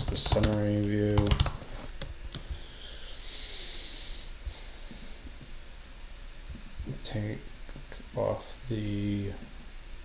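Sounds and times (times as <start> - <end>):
typing on computer keyboard: 0.0 - 1.6.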